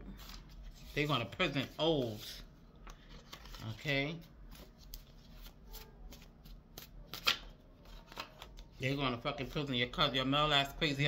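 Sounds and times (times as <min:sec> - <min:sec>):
cards being shuffled: 0:01.6 - 0:08.8.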